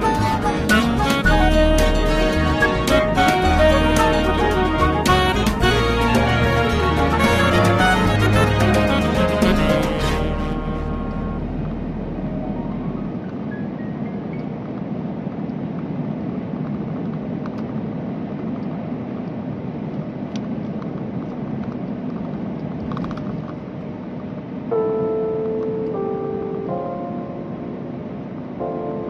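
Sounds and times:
background music: 0.0 - 13.2
vehicle road and engine noise: 0.0 - 24.7.

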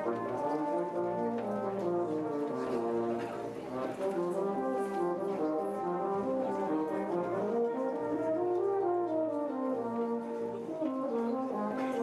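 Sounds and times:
brass band playing chords: 0.0 - 12.0.

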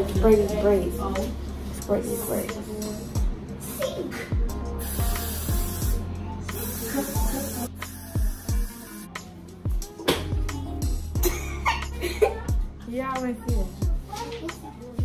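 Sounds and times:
music with deep beat: 0.0 - 15.0
hair spray hissing: 4.8 - 9.1.

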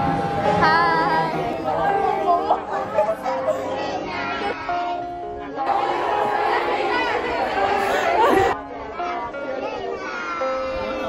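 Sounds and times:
girls talking: 0.6 - 11.0.

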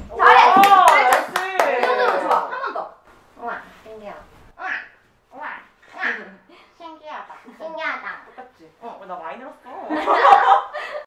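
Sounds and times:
excited exclaiming voices: 0.1 - 2.9
hand clapping: 0.5 - 2.5.

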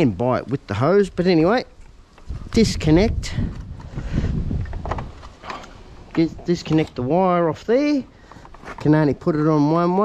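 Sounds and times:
wind rumble on microphone: 1.1 - 5.3.

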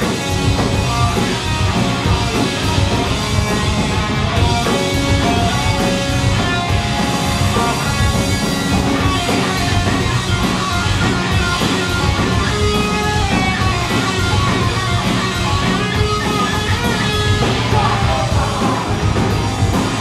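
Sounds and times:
punk rock band playing: 0.0 - 20.0.

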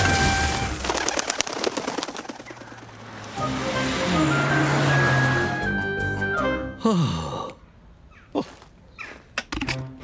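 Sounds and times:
cartoon bird wings flapping: 0.4 - 3.0.

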